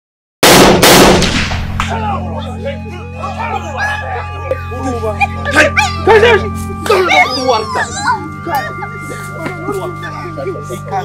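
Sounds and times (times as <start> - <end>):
gunshots: 0.4 - 1.9.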